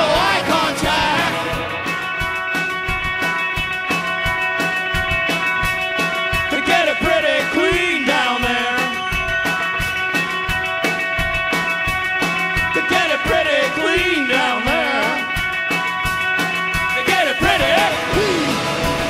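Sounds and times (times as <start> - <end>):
electric guitars droning chord: 0.0 - 19.0
fast drumbeat with cymbals: 0.0 - 19.0.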